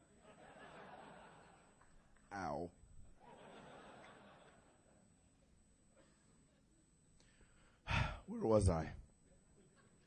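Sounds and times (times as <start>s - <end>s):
man sighing into microphone: 7.8s - 8.3s.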